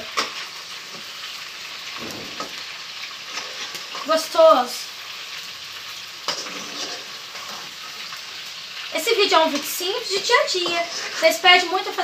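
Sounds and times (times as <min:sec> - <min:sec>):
sausage sizzling in a frying pan: 0:00.0 - 0:12.0
metal spoon scraping a pan: 0:06.3 - 0:08.1, 0:09.5 - 0:12.0.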